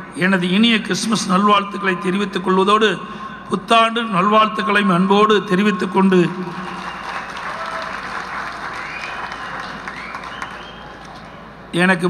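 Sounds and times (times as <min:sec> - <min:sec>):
audience applauding: 0:06.4 - 0:11.4.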